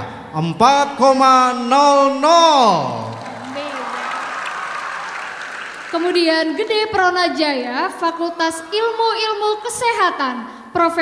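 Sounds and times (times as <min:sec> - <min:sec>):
audience applauding: 0:02.3 - 0:07.4.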